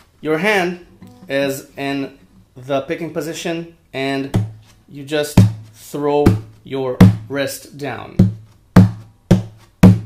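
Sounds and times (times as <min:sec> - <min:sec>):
palm thumps on acoustic guitar: 0:01.0 - 0:01.6, 0:04.2 - 0:07.4, 0:08.1 - 0:10.0.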